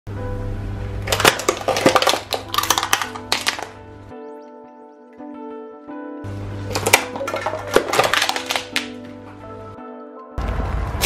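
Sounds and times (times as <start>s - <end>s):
background music: 0.1s - 11.0s
tyre crushing paper cups: 1.1s - 3.8s, 6.7s - 9.4s.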